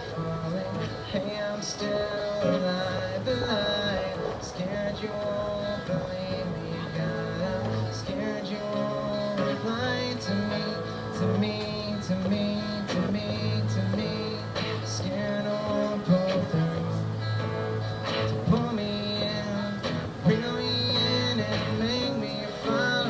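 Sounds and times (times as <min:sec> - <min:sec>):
amplified acoustic guitar strumming: 0:00.0 - 0:23.0.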